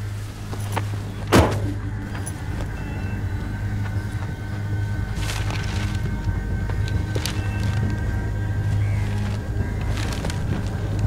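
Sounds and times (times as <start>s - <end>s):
car engine running: 0.0s - 11.0s
car door shutting: 1.3s - 2.3s.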